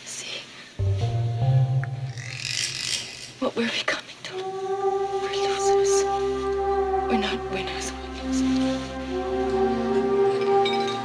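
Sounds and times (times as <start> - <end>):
steady higher tones: 0.8 - 3.4, 4.2 - 11.0.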